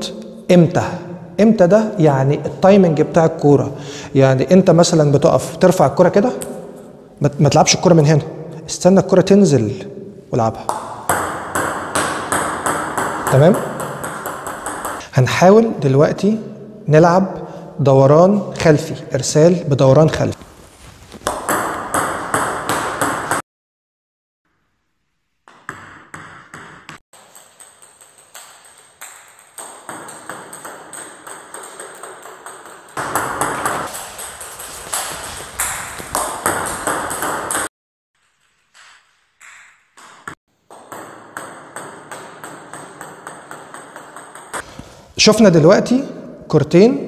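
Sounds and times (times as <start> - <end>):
ping pong ball bouncing on table: 10.7 - 15.0, 21.3 - 23.4, 25.5 - 37.7, 39.4 - 44.6
ping pong ball clicking off bat: 10.7 - 15.0, 25.5 - 37.7, 39.4 - 44.6.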